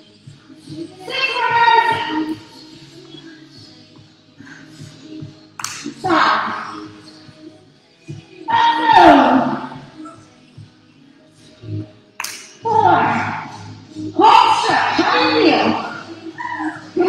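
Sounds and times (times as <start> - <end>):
workout music over speaker: 0.0 - 17.0.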